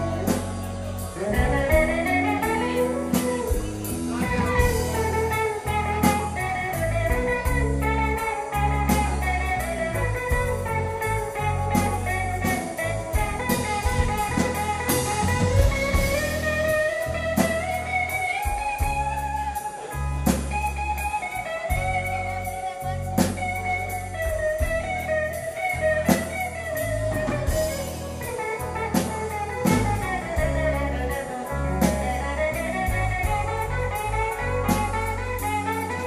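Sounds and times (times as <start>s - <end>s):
bass guitar: 0.0s - 36.0s
drum kit: 0.0s - 36.0s
electric guitars: 0.0s - 36.0s.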